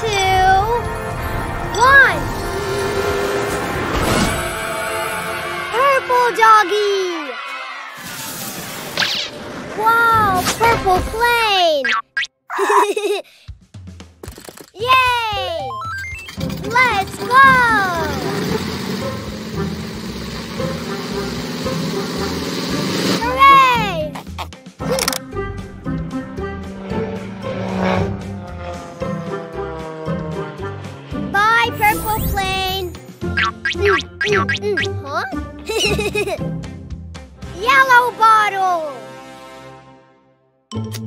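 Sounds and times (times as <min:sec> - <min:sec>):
squeaky cartoon vocal sounds: 0:11.8 - 0:12.6, 0:33.3 - 0:36.0
light background music: 0:14.8 - 0:39.0
cartoon propeller plane drone: 0:15.0 - 0:36.4.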